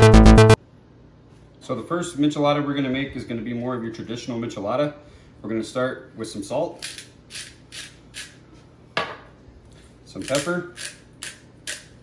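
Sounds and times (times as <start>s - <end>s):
salt grinder crunching: 10.2s - 12.0s.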